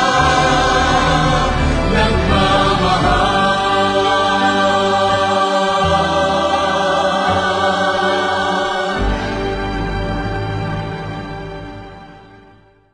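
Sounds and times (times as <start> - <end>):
choir singing held chords: 0.0 - 12.8.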